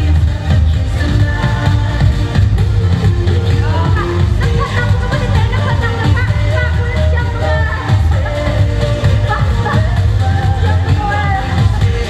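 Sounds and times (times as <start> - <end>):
loud dance music: 0.0 - 12.0.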